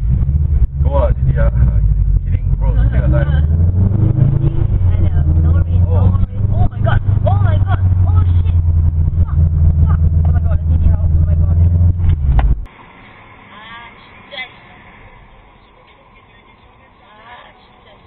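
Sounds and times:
car engine droning: 0.0s - 18.0s
voices talking: 0.8s - 11.9s, 13.5s - 18.0s.

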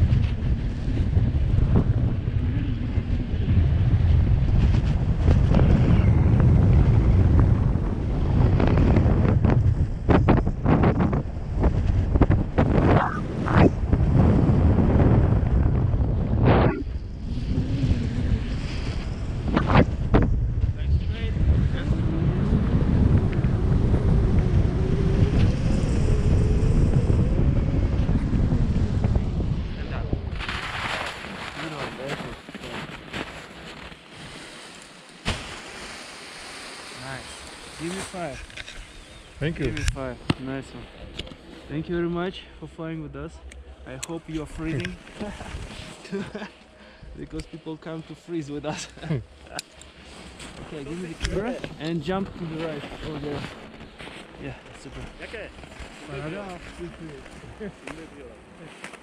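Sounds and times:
wind buffeting microphone: 0.0s - 46.4s, 49.1s - 58.7s.

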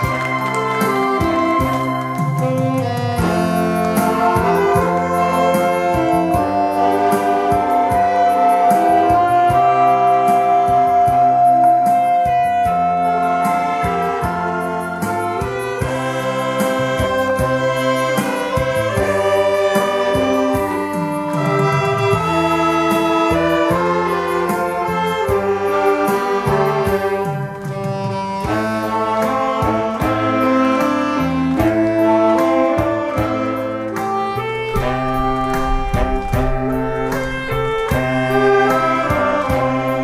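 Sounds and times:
steady beat: 0.0s - 9.8s, 33.9s - 40.0s
saxophone ensemble playing melody: 0.0s - 40.0s.

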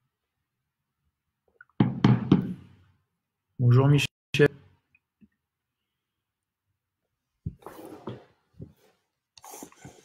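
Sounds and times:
knocks on hard surface: 1.8s - 2.6s.

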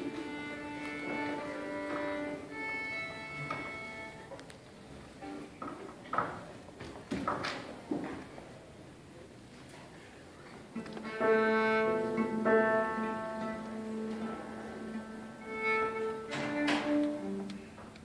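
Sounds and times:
violin and cello tuning: 0.0s - 4.3s, 10.7s - 18.0s.

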